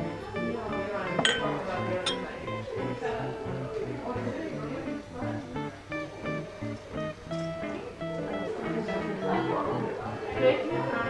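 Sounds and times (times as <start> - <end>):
acoustic guitar music: 0.0 - 11.0
glass clinking: 1.2 - 2.4.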